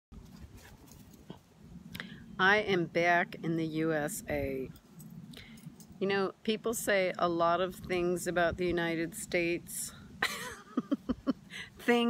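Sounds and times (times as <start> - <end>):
low background noise: 0.2 - 12.0.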